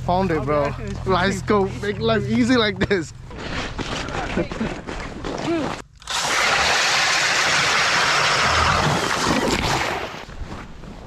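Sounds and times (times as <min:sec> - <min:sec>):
drill auger grinding through ice: 0:06.0 - 0:10.1.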